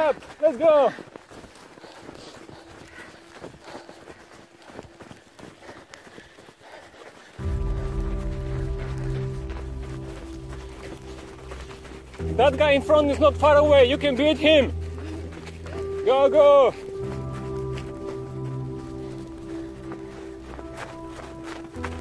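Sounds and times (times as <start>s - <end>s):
running footsteps in slushy snow: 0.0s - 22.0s
music with low sustained chords: 7.4s - 22.0s.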